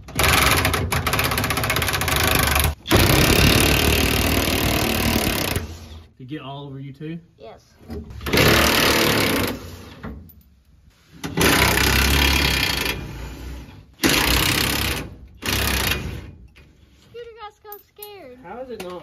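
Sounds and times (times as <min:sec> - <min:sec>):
impact wrench hammering: 0:14.0 - 0:16.3.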